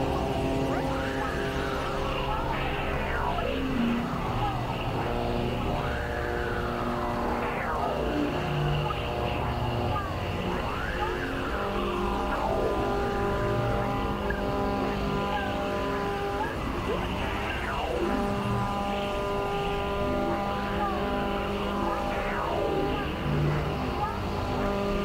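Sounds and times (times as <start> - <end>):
synthesizer drone with sweeps: 0.0 - 25.0.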